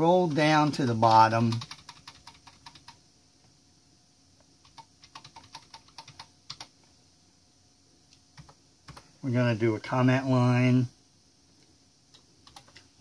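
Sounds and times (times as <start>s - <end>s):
keyboard keys tapping: 1.5s - 3.0s, 4.6s - 6.7s, 12.1s - 12.9s.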